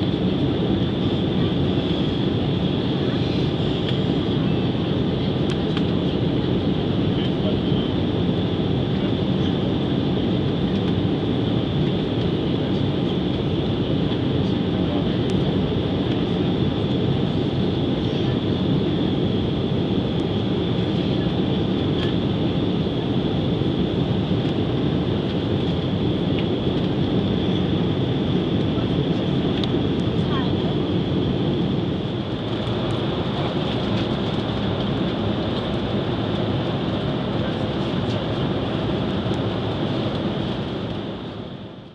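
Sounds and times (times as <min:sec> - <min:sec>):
jet engine cabin rush: 0:08.7 - 0:41.9.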